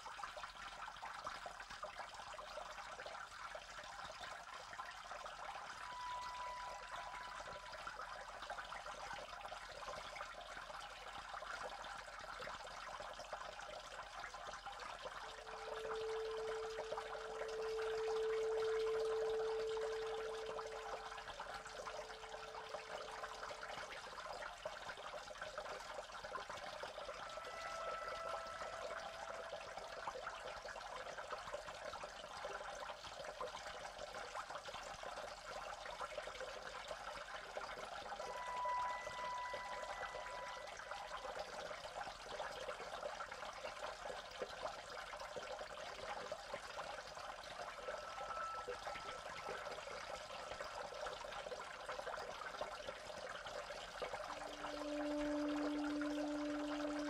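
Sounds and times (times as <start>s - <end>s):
trickling running water: 0.0s - 57.0s
soft long-held tones: 2.0s - 32.9s, 35.2s - 57.0s
ambient electronic music: 5.4s - 8.1s, 15.3s - 23.9s, 26.7s - 30.8s, 38.3s - 41.3s, 47.7s - 51.1s, 54.4s - 57.0s.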